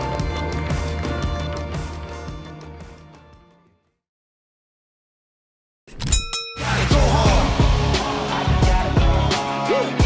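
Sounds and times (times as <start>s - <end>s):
upbeat music with bass line: 0.0s - 3.7s, 6.6s - 10.0s
ringing metallic ding: 6.0s - 6.9s.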